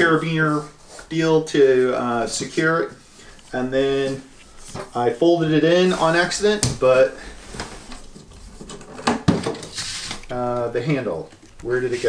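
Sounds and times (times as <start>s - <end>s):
plastic table rubbing: 3.6s - 12.0s.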